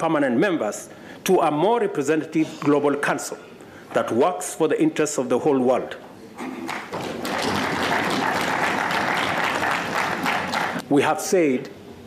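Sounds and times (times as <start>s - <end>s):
audience applauding: 6.6s - 10.8s.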